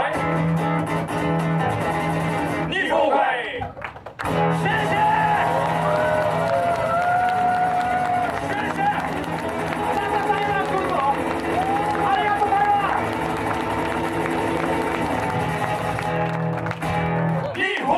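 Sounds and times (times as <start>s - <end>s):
audience clapping along: 3.6s - 17.9s.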